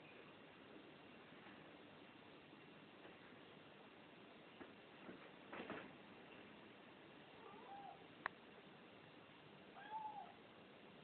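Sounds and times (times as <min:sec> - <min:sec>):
cat meowing softly: 0:07.4 - 0:08.1, 0:09.7 - 0:10.4.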